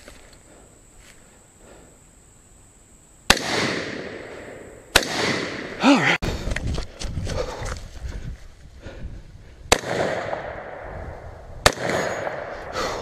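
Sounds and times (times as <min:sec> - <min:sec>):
rifle shots: 0:03.3 - 0:05.8, 0:09.7 - 0:10.9, 0:11.6 - 0:12.6.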